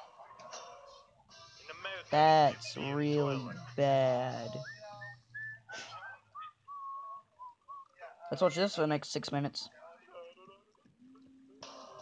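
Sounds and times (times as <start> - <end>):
person whistling a tune: 4.5 - 7.9.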